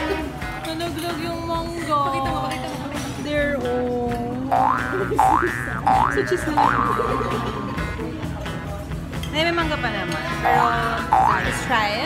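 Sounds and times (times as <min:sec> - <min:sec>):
music with held notes: 0:00.0 - 0:12.0
cartoon boing sound effect: 0:04.5 - 0:08.1, 0:10.4 - 0:11.6.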